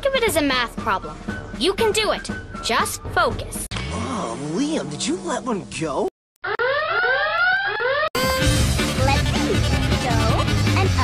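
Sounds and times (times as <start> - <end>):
electronic alarm rising tones: 6.4 - 8.5.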